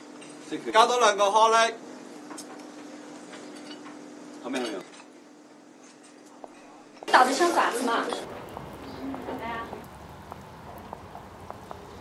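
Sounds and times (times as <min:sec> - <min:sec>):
faint clicks and taps: 0:08.2 - 0:12.0.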